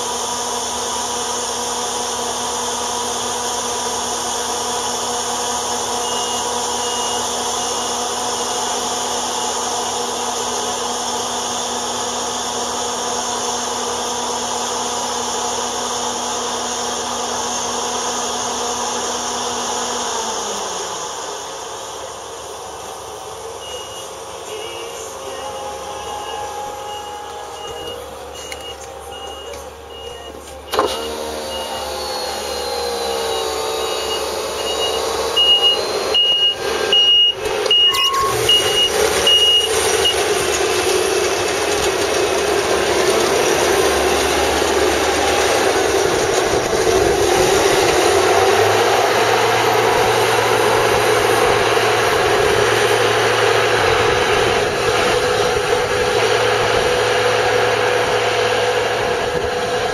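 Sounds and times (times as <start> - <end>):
harvester engine running: 0.0 - 59.9
reversing alarm beeping: 5.8 - 9.7, 23.4 - 40.4.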